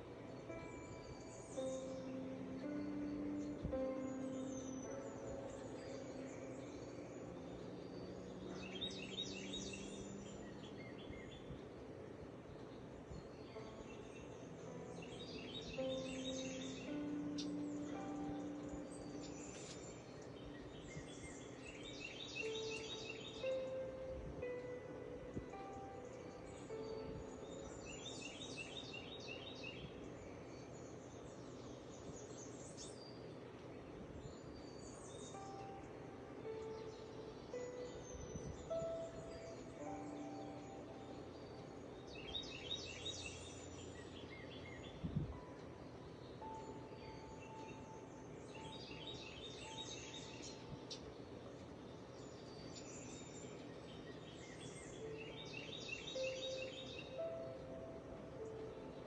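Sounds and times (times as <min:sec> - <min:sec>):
bird chirps trilling: 0:00.0 - 0:33.5, 0:34.2 - 0:59.0
soft background music: 0:00.0 - 0:59.0.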